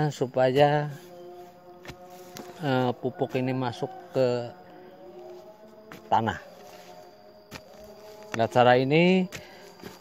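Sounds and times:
hand tool knocking in soil: 0:00.0 - 0:01.1, 0:07.5 - 0:10.0
faint steady hum: 0:00.0 - 0:10.0.

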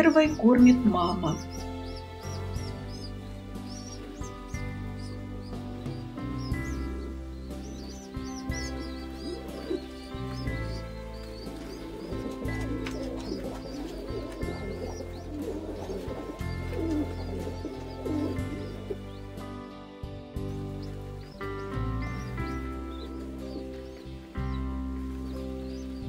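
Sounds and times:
soft background music: 0:00.0 - 0:26.0
pigeon squabs peeping: 0:01.3 - 0:19.1.

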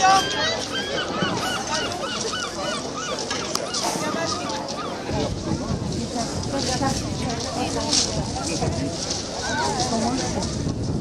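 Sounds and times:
gull calling: 0:00.0 - 0:05.1
crowd chatter: 0:00.0 - 0:11.0.

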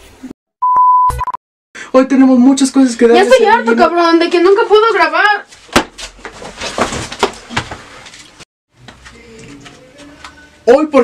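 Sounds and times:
electronic beep: 0:00.6 - 0:01.4.

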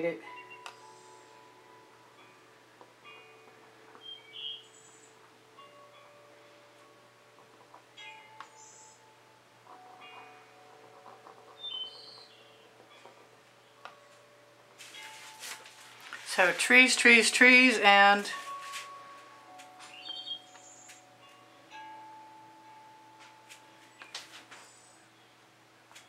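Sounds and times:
chime-like background music: 0:00.0 - 0:25.4.

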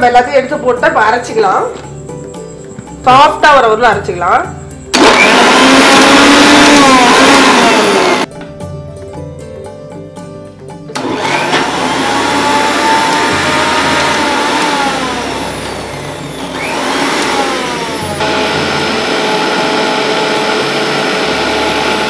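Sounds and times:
mixer grinder motor running: 0:04.9 - 0:08.3, 0:11.0 - 0:22.0.

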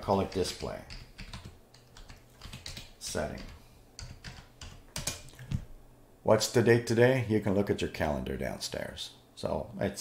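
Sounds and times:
keyboard keystrokes: 0:00.3 - 0:05.3.

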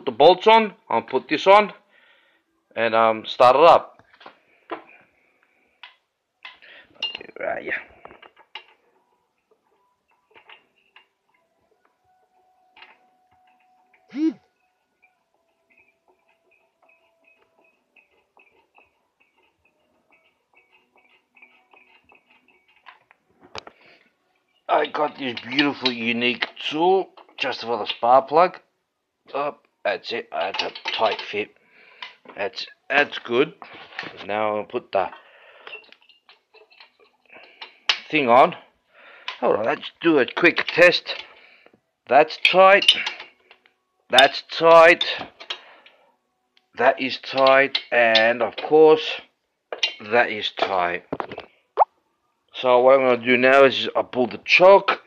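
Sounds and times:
small metal parts clicking: 0:08.0 - 0:08.8, 0:09.4 - 0:11.5, 0:15.0 - 0:23.7, 0:30.4 - 0:31.4, 0:35.6 - 0:38.1, 0:42.4 - 0:43.8, 0:47.2 - 0:48.7
man humming hmm: 0:14.1 - 0:14.4.

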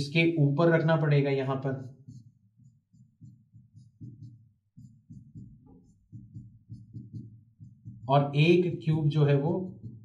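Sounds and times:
stylus tapping on touchscreen: 0:01.8 - 0:10.0.

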